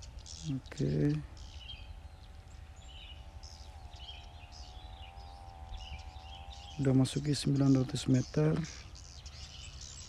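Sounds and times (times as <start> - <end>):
birds chirping: 0.0 - 10.0
faint steady hum: 0.0 - 10.0
wind rumble on microphone: 0.0 - 10.0.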